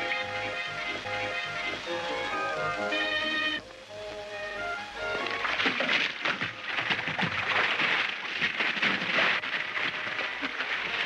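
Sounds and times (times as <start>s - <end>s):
music: 0.0s - 7.6s, 9.3s - 11.0s
water rushing in bathtub: 5.0s - 11.0s
small water splashes: 5.3s - 11.0s.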